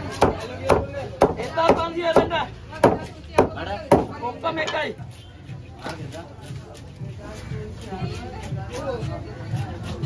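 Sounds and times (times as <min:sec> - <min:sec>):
knife chopping on wooden block: 0:00.0 - 0:04.2.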